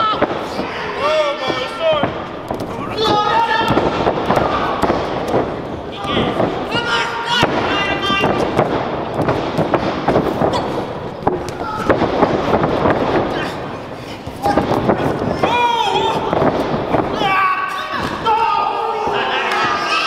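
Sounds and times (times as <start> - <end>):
slaps and thuds in wrestling ring: 1.4 - 17.3
crowd shouting: 2.7 - 5.3, 17.1 - 20.0.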